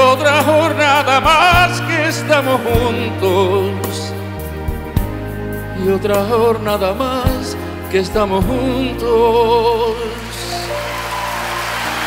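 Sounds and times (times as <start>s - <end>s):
live band sustained chord: 0.0s - 12.0s
steady bass: 0.0s - 12.0s.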